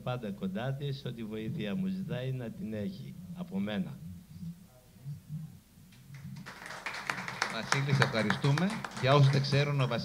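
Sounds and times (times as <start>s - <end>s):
faint room noise: 0.0s - 10.0s
audience clapping: 6.1s - 10.0s.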